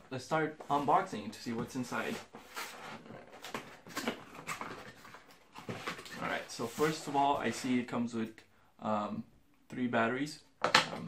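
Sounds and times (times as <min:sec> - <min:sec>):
cardboard box scraping and rustling: 0:01.8 - 0:07.6.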